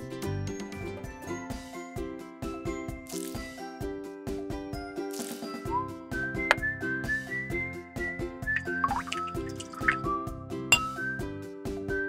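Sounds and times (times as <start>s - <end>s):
whistled melody: 5.4s - 12.0s
bouncy beat: 8.6s - 10.1s.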